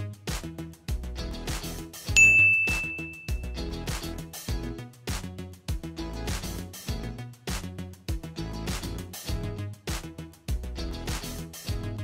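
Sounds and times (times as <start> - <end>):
background music with steady beat: 0.0 - 12.0
bright bell-like ding: 2.2 - 3.6.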